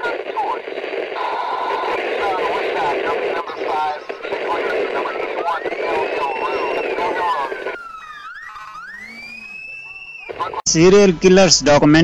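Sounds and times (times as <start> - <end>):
siren wailing: 0.0 - 10.7
voices chattering: 0.0 - 12.0.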